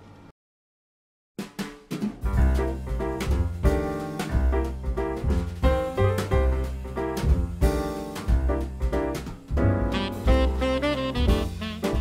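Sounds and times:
sharp drum hits: 1.4 - 12.0
band playing background music: 2.2 - 12.0.

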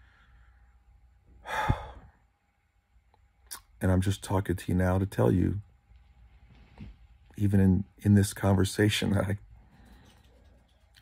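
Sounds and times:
man sighing: 1.4 - 2.1.

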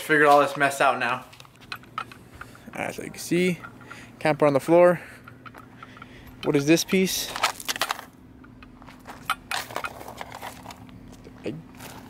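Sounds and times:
footsteps on gravel: 0.0 - 1.7, 6.4 - 12.0.

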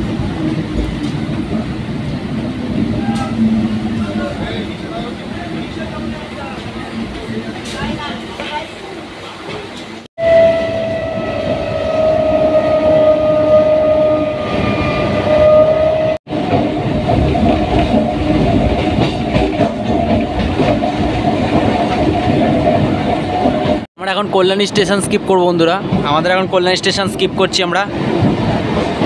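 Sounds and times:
steady train whine: 0.0 - 29.0
train horn: 10.2 - 16.2
train wheels clickety-clack: 16.3 - 23.9.

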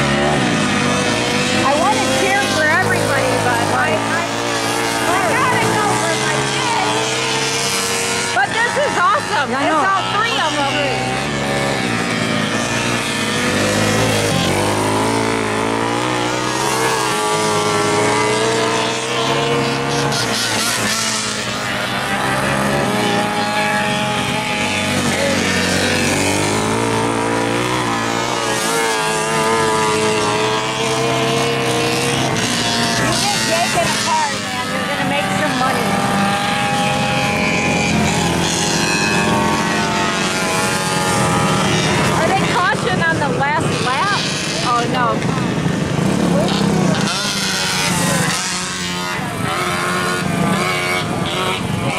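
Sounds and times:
go-kart engines racing: 0.0 - 51.9.

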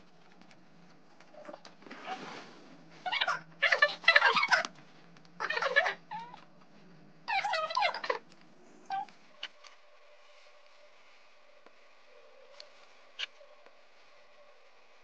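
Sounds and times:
woman squealing and giggling: 3.2 - 4.7.

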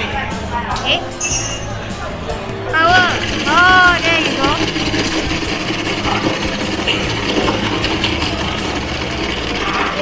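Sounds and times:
electric ice shaving machine: 2.8 - 10.0.

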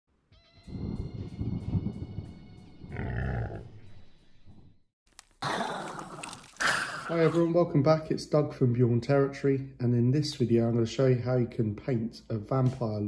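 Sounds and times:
deep rough creature-like sound: 2.8 - 4.0.

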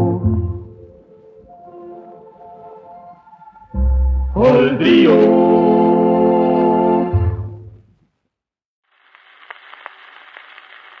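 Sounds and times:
record surface hiss: 7.8 - 11.0
record clicks and crackles: 8.8 - 11.0.

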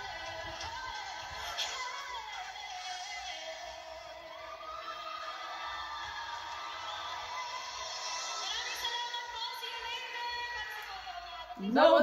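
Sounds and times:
audience cheering: 4.4 - 8.6.

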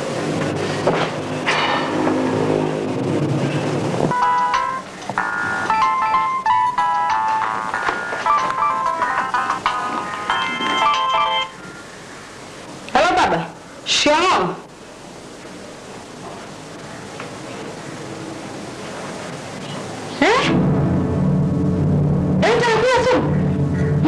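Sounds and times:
phone ringtone beeping melody: 4.1 - 11.6
low humming: 20.4 - 24.0.

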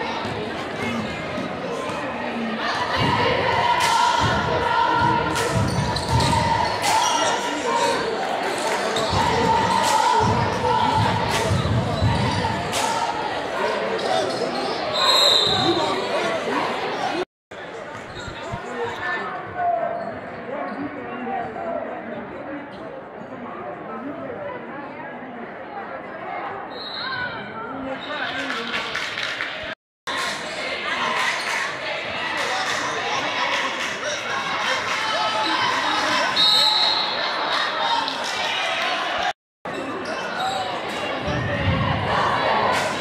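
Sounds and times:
crowd voices: 0.0 - 43.0.

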